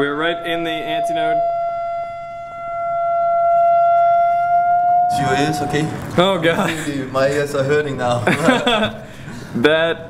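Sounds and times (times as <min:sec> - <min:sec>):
loud high test tone: 0:00.0 - 0:06.7.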